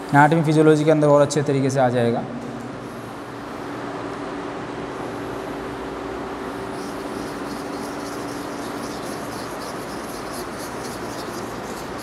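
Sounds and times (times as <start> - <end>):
chalk scratching on blackboard: 6.7 - 12.0.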